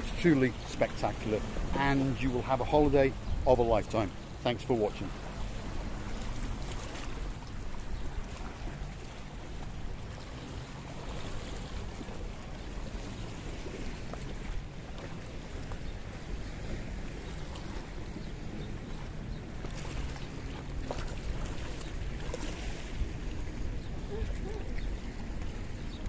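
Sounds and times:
waves lapping on rocky shore: 0:00.0 - 0:26.0
wind rumbling on microphone: 0:05.2 - 0:26.0.

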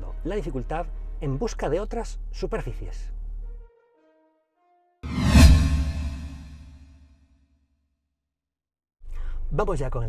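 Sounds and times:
deep whoosh: 0:05.1 - 0:06.8.

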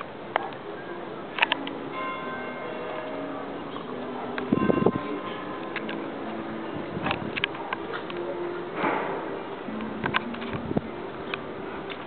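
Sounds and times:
church bell ringing: 0:00.8 - 0:07.4.

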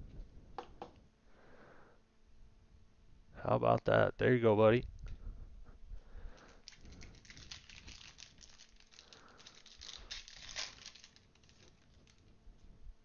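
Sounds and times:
foil wrapper crinkling: 0:06.3 - 0:12.4.

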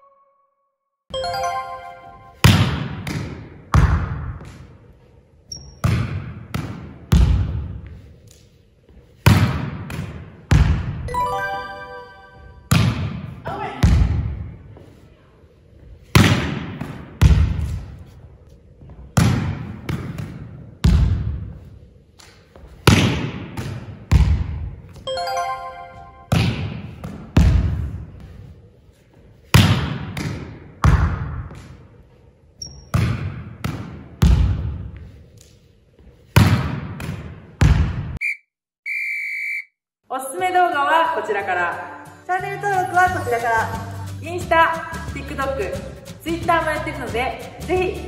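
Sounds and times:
volleyball struck by hand: 0:02.4 - 0:04.6, 0:05.8 - 0:07.7, 0:09.2 - 0:11.0, 0:12.7 - 0:14.3, 0:16.2 - 0:17.7, 0:19.2 - 0:21.2, 0:22.8 - 0:24.6, 0:26.3 - 0:27.8, 0:29.6 - 0:31.7, 0:32.9 - 0:34.7, 0:36.4 - 0:38.2
long high beep: 0:11.1 - 0:12.7, 0:25.1 - 0:26.3
volleyball smack echoing: 0:12.7 - 0:14.2, 0:26.3 - 0:27.8.

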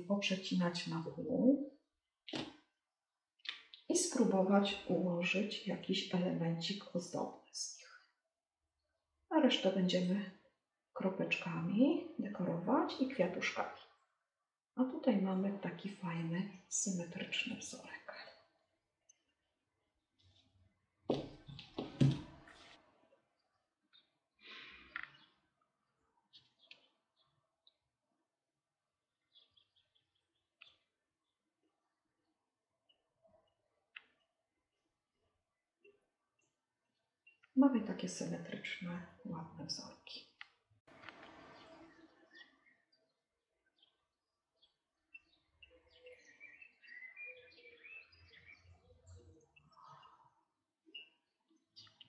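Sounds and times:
faint chirps: 0:45.2 - 0:52.0.

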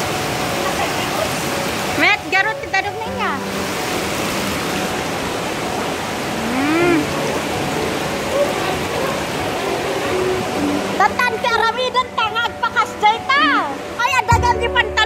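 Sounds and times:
river water rushing over rocks: 0:00.0 - 0:14.7
short rising-and-falling voice: 0:06.3 - 0:07.2.

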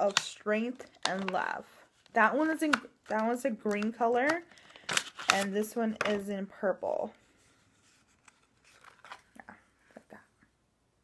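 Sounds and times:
soft handling rustling: 0:07.1 - 0:10.4.

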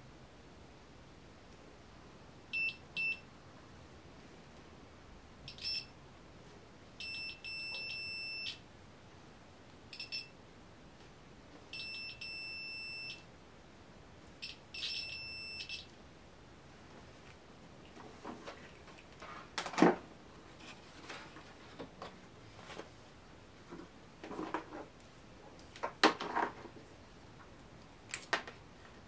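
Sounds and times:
multimeter high-pitched beeps: 0:02.5 - 0:03.2, 0:05.5 - 0:05.9, 0:07.0 - 0:08.6, 0:09.9 - 0:10.4, 0:11.7 - 0:13.2, 0:14.4 - 0:15.9.

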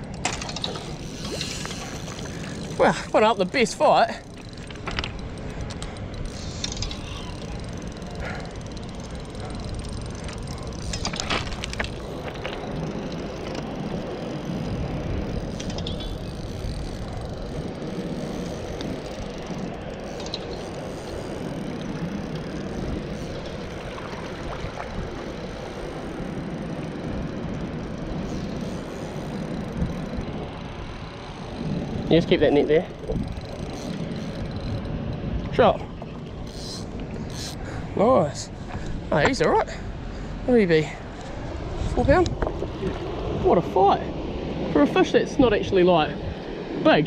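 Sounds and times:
spinning reel being worked: 0:00.0 - 0:39.6
fast-flowing water: 0:22.3 - 0:26.6.

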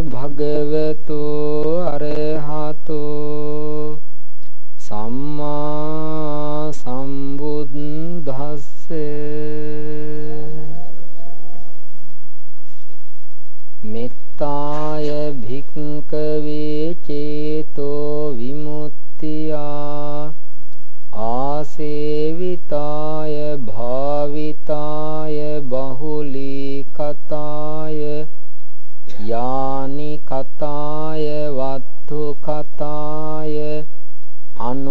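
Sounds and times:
man chanting: 0:00.0 - 0:04.0, 0:04.8 - 0:11.9, 0:13.8 - 0:20.4, 0:21.1 - 0:28.3, 0:29.1 - 0:33.9, 0:34.5 - 0:34.9.

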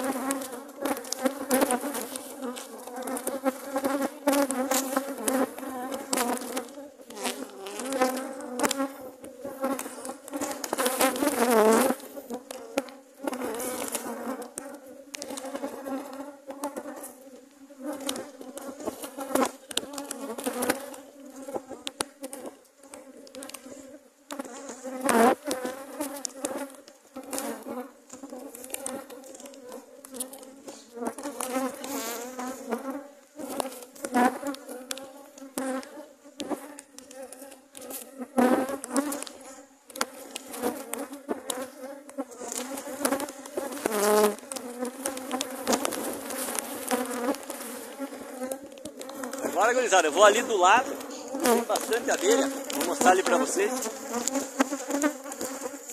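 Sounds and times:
honey bees buzzing: 0:00.0 - 0:55.9.

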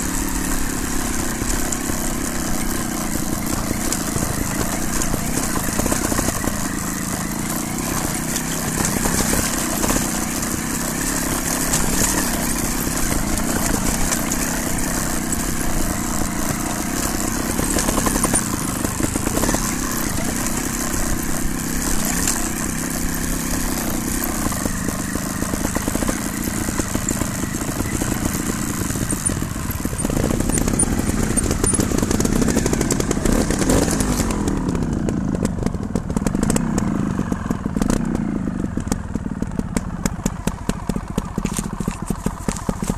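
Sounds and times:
rapid clicking: 0:00.0 - 0:36.9
motorcycle engine revving: 0:00.0 - 0:42.9.

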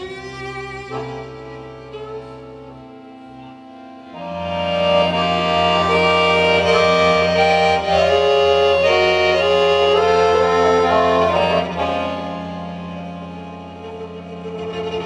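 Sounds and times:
accordion melody: 0:00.0 - 0:15.0
violin playing: 0:00.0 - 0:15.0.

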